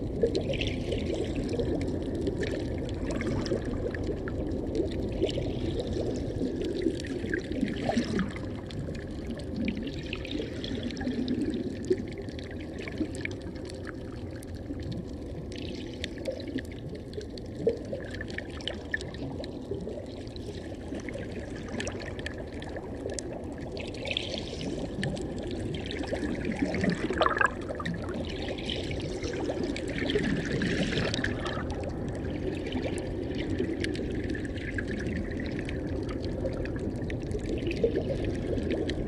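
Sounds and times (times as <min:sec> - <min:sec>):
moving seawater underwater: 0:00.0 - 0:39.0
small underwater clicks and crackles: 0:00.0 - 0:39.0.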